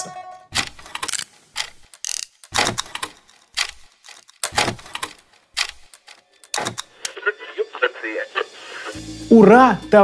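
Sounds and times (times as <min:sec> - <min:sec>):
mechanical clicks and clacks: 0:00.5 - 0:07.0.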